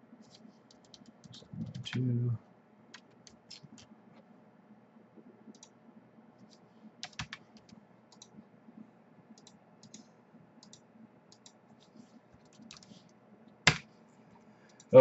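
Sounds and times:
mouse and keyboard clicks: 0:00.3 - 0:02.0, 0:03.0 - 0:03.9, 0:06.4 - 0:08.4, 0:09.4 - 0:13.0.

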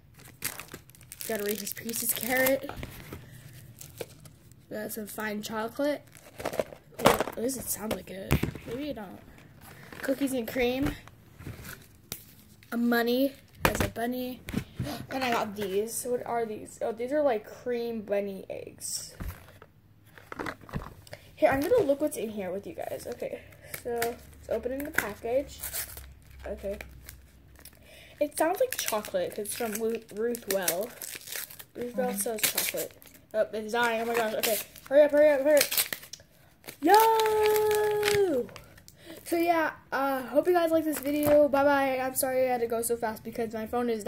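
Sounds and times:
cardboard box crinkling: 0:00.2 - 0:04.4, 0:06.0 - 0:10.3.

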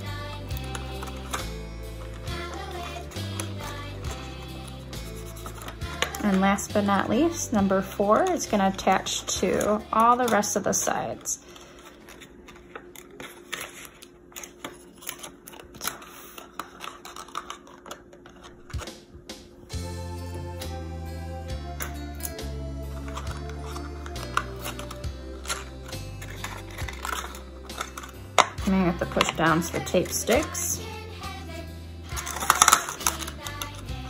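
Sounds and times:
paper crinkling: 0:00.6 - 0:06.5, 0:11.4 - 0:18.9, 0:23.0 - 0:29.5
background music with bass: 0:19.7 - 0:34.0.

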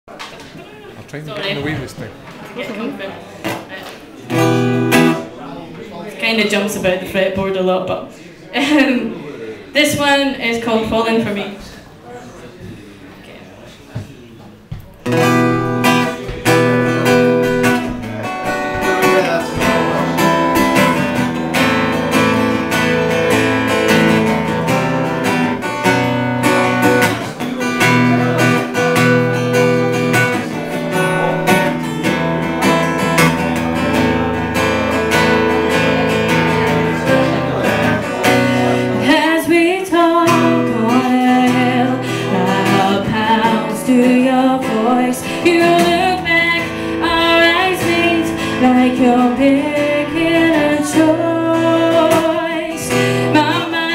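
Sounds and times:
acoustic guitar: 0:00.1 - 0:13.0, 0:13.7 - 0:53.9
woman singing: 0:38.9 - 0:53.9.

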